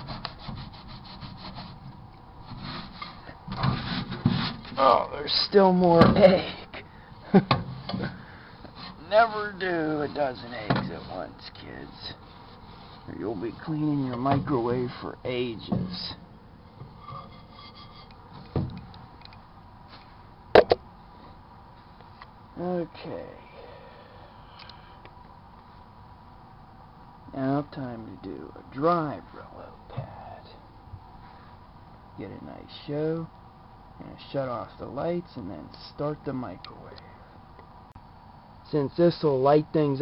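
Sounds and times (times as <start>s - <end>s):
steel wool pad scrubbing: 0.0s - 1.9s
steel wool scraping inside microwave: 0.0s - 4.9s, 7.7s - 18.6s.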